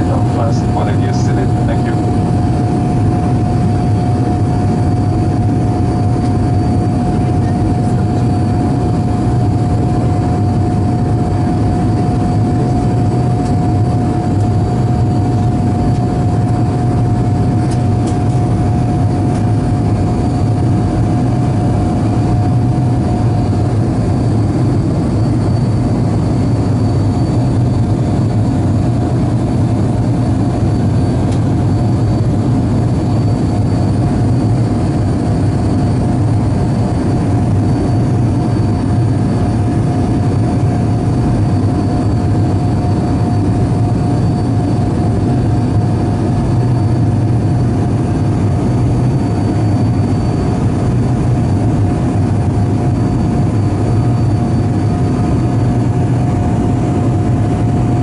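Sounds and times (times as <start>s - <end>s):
deep drone: 0.0s - 58.0s
jet engines roaring: 0.0s - 58.0s
steady whine: 0.0s - 58.0s.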